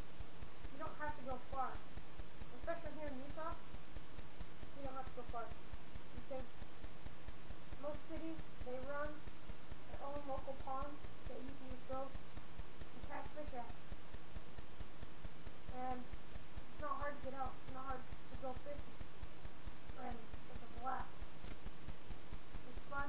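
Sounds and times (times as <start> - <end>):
low pulsing buzz: 0.0 - 23.0.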